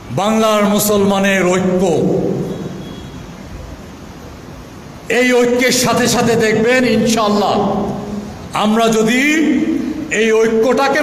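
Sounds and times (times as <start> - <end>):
amplified man's speech echoing: 0.0 - 2.5, 5.0 - 11.0
low room noise: 0.0 - 11.0.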